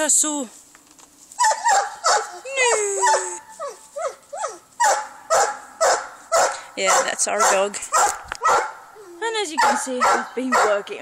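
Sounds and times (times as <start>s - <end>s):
dog whining: 1.4s - 5.0s
dog barking and yelping: 1.4s - 10.9s.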